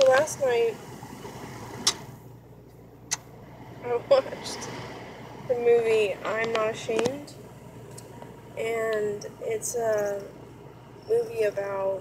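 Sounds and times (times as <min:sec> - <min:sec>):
woman speaking: 0:00.0 - 0:00.8, 0:03.8 - 0:04.7, 0:05.5 - 0:07.4, 0:08.6 - 0:10.4, 0:11.0 - 0:12.0
car cabin hum: 0:00.0 - 0:12.0.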